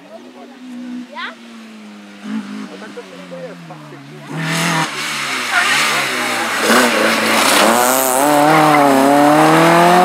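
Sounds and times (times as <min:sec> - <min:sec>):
spectators' voices: 0:00.0 - 0:09.3
rally car engine running: 0:02.0 - 0:10.0.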